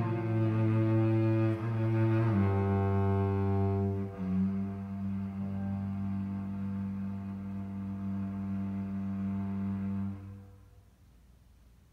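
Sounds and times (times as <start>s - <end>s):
cello bowed low note: 0.0s - 10.8s.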